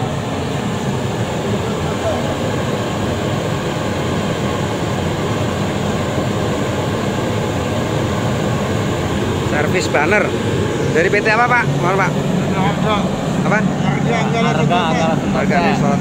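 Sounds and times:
oil burner blower and flame: 0:00.0 - 0:16.0.

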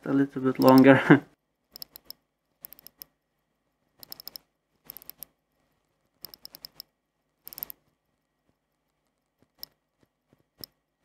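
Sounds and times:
watch winding ratchet clicks: 0:01.7 - 0:03.1, 0:04.0 - 0:05.3, 0:06.2 - 0:06.9, 0:07.5 - 0:07.8.

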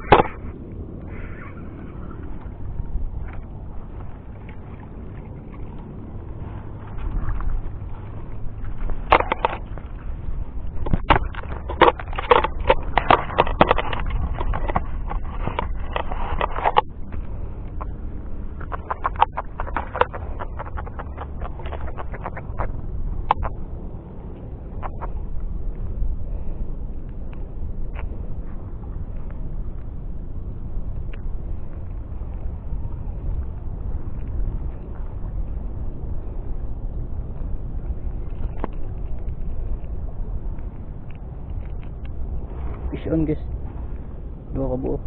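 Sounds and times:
wind on microphone: 0:00.0 - 0:45.0
fishing tackle clicks and knocks: 0:06.8 - 0:26.1, 0:30.9 - 0:44.0.

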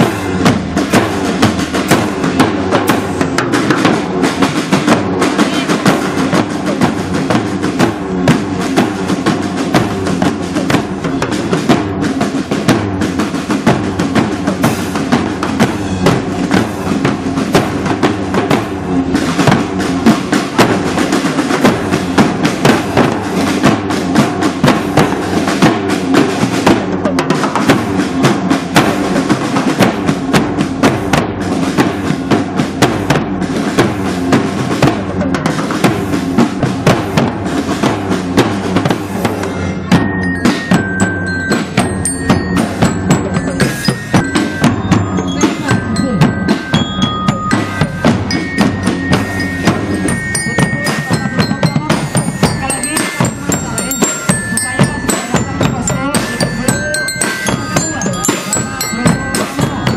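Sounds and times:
marching drum band: 0:00.0 - 0:59.9.

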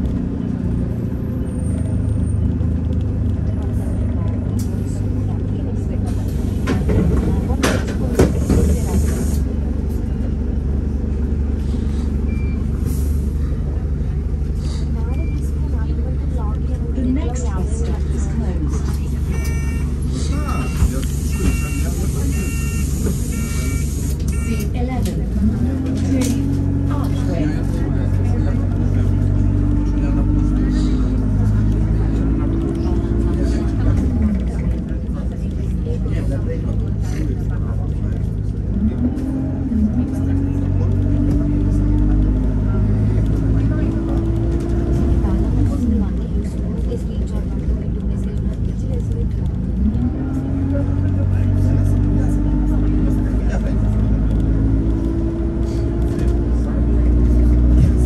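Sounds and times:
bus engine droning: 0:00.0 - 0:58.0
short beeps: 0:19.3 - 0:24.7.

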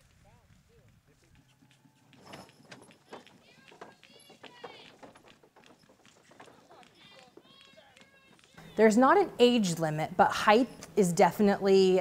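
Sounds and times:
wagon knocking and rustling: 0:01.6 - 0:08.6
faint voices: 0:06.2 - 0:09.0.

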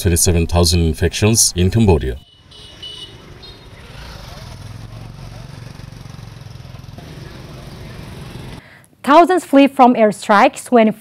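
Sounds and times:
motorbikes and scooters passing: 0:02.2 - 0:08.7.

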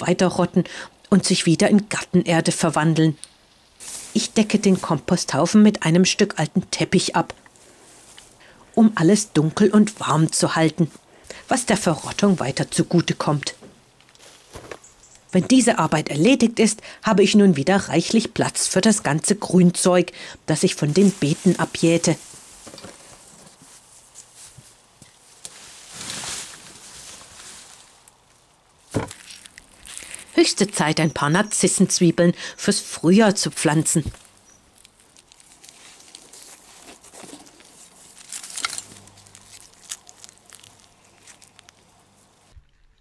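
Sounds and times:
garden rustles: 0:01.2 - 0:43.0.

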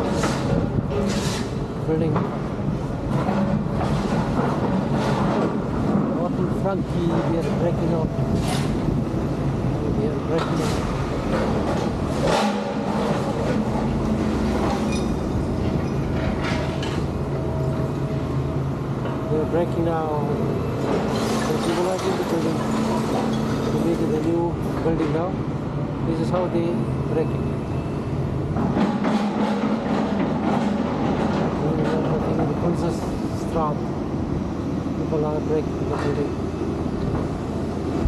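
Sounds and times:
excavator diesel engine: 0:00.0 - 0:38.0
rattling clatter of rubble: 0:03.0 - 0:06.4, 0:10.3 - 0:17.2, 0:20.8 - 0:25.1, 0:28.6 - 0:32.9.

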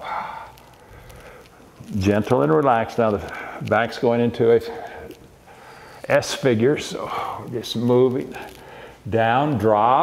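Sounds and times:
man talking: 0:01.8 - 0:05.2, 0:06.0 - 0:10.0.

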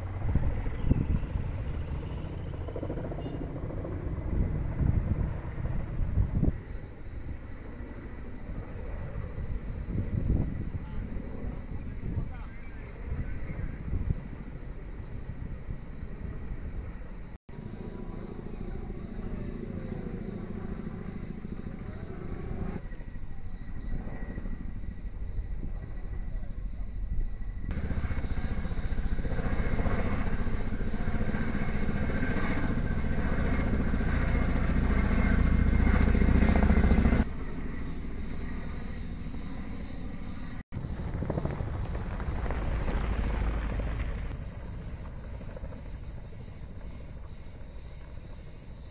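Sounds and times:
helicopter rotor and turbine drone: 0:00.0 - 0:48.9.

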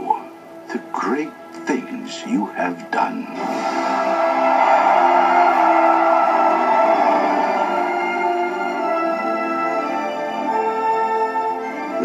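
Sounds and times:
trailer music with held notes: 0:00.0 - 0:12.0.

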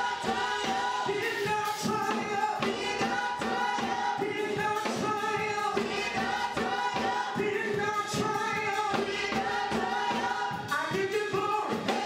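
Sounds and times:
choir singing gospel music: 0:00.0 - 0:12.0
steady beat: 0:00.0 - 0:12.0.

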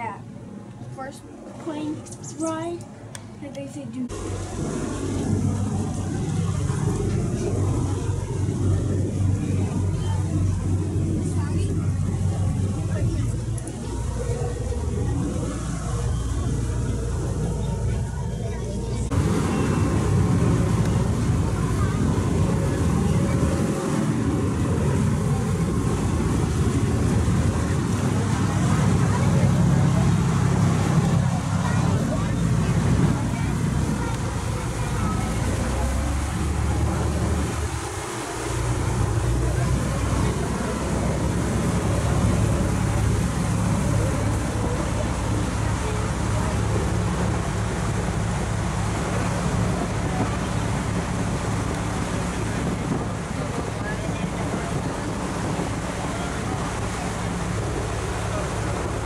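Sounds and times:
boat engine droning: 0:00.0 - 0:59.0
water noise: 0:00.0 - 0:59.0
wind: 0:00.0 - 0:59.0.

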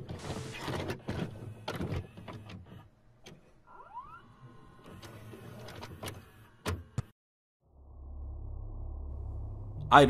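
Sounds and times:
rising whine: 0:07.6 - 0:10.0.

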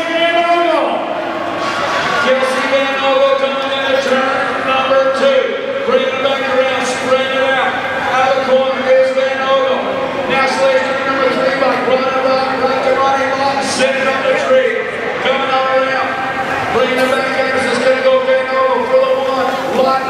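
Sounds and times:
announcer talking over loudspeakers: 0:00.0 - 0:01.2, 0:02.0 - 0:20.0.

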